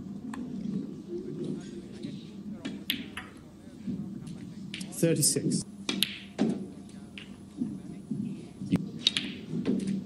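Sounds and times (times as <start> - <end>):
murmur of voices: 0.0 - 5.8, 6.5 - 9.0
snooker balls clicking: 2.6 - 3.4, 5.9 - 7.4, 9.0 - 10.0.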